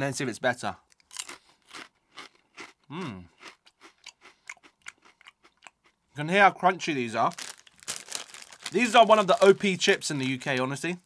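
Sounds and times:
potato crisp crunching: 0.9 - 6.0, 6.8 - 10.8.

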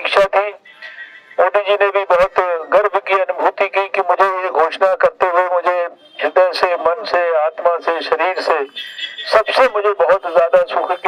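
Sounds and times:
man speaking into a microphone: 0.0 - 11.0.

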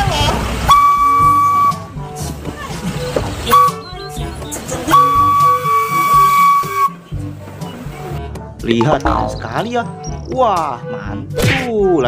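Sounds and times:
background music: 0.0 - 12.0
locomotive whistle: 0.6 - 2.3, 3.0 - 7.1.

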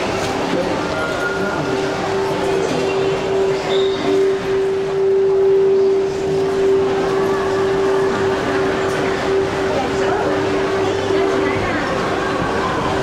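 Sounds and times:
steady mid-pitch hum: 0.0 - 13.0.

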